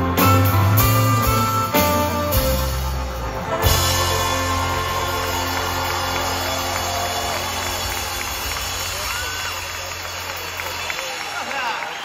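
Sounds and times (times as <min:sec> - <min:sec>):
live pop-rock band chord: 0:00.0 - 0:09.0
crowd cheering and whistling: 0:01.3 - 0:12.0.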